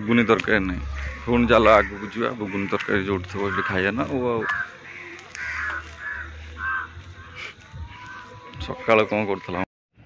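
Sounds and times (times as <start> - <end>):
bird calling: 0.0 - 9.6.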